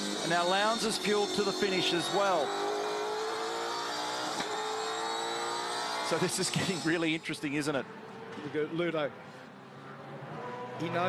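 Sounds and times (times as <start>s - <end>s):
racing car engine at high revs: 0.0s - 8.4s, 9.5s - 11.0s.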